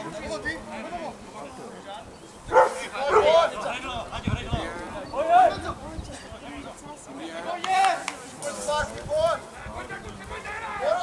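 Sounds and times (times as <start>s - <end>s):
faint background voices: 0.0s - 11.0s
dog barking: 2.5s - 3.4s.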